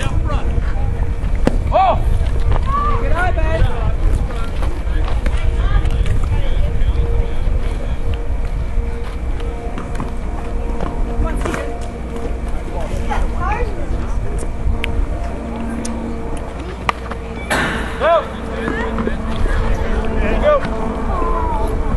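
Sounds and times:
distant voices calling out: 0:00.0 - 0:21.9
wind rumbling on microphone: 0:00.0 - 0:21.9
sharp knock: 0:17.5 - 0:18.0.

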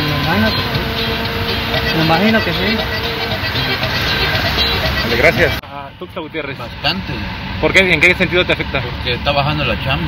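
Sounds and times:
road noise inside a car: 0:00.0 - 0:10.0.

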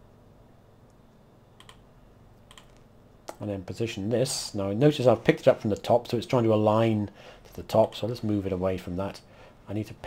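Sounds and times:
computer mouse clicks: 0:01.6 - 0:01.9, 0:02.5 - 0:03.4.

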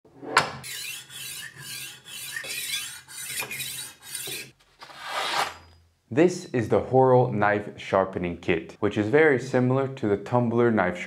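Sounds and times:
knife sharpener grinding steel: 0:00.6 - 0:05.8.

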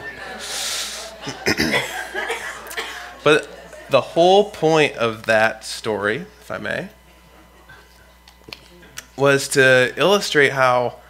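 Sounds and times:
man clearing throat: 0:01.2 - 0:03.1
man coughing: 0:01.2 - 0:03.1.

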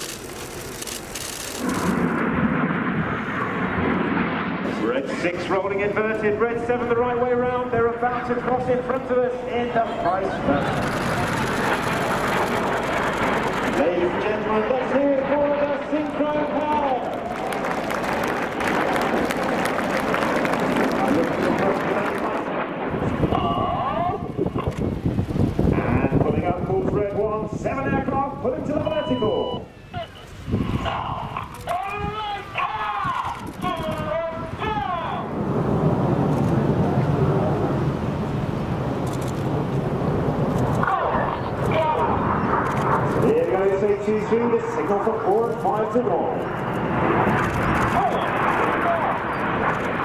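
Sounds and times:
jet engines passing overhead: 0:00.0 - 0:50.0
man speaking over loudspeaker: 0:04.8 - 0:10.7, 0:13.8 - 0:17.2, 0:20.9 - 0:22.6, 0:25.7 - 0:30.2, 0:30.9 - 0:35.4, 0:43.2 - 0:46.4.

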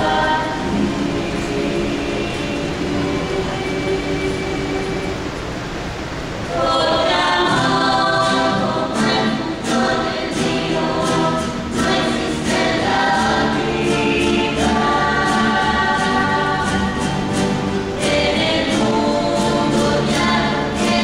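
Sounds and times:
mixed chorus singing: 0:00.0 - 0:21.0
strummed guitars: 0:06.6 - 0:21.0
double bass: 0:07.5 - 0:21.0.

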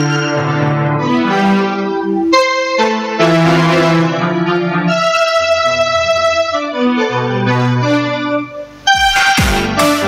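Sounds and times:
electric piano chords: 0:00.0 - 0:10.0
drum beat: 0:09.0 - 0:10.0.

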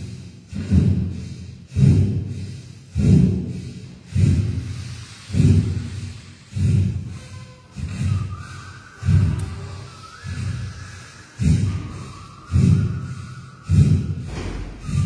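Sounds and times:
sharp puffs of breath: 0:00.0 - 0:15.0.

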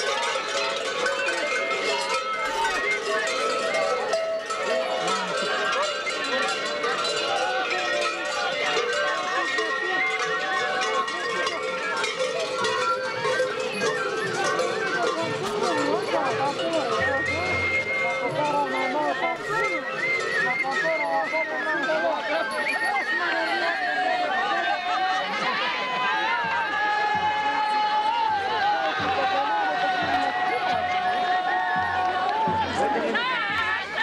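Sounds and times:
large bells clanging: 0:00.0 - 0:20.4
crowd voices: 0:00.0 - 0:34.0
shepherd's pipe folk melody: 0:00.0 - 0:34.0.

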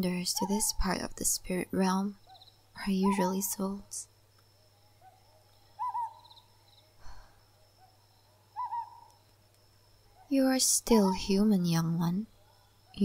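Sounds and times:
owl hooting: 0:04.6 - 0:06.5, 0:07.6 - 0:09.2.

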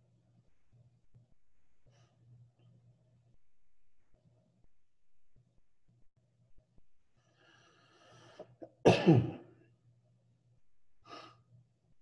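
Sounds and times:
soft breathy noise: 0:07.1 - 0:08.7, 0:11.0 - 0:11.6
person sneezing loudly: 0:08.6 - 0:09.4.

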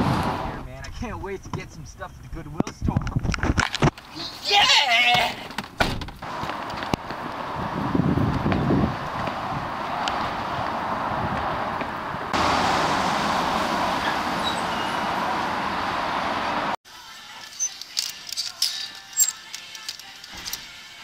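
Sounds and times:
busy road traffic: 0:00.0 - 0:02.8, 0:03.6 - 0:16.8.

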